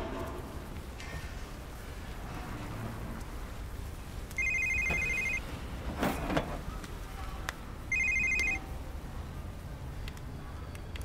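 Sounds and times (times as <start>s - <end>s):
phone ringing: 4.4s - 5.5s, 7.9s - 8.7s.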